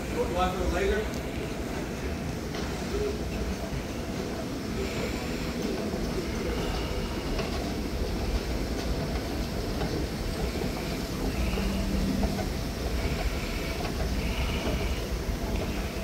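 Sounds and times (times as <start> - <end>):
escalator mechanical rumble: 0.0 - 16.0.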